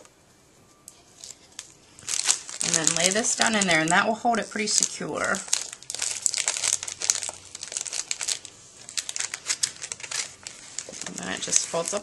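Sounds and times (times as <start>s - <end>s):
paper and cellophane rustling: 0.9s - 12.0s.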